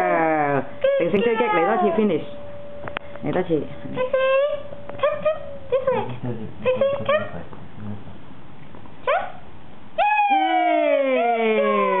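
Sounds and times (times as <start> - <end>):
dog howling whine: 0.0 - 2.3, 3.9 - 6.1, 10.0 - 12.0
small dog yipping: 4.0 - 6.1, 9.0 - 9.4.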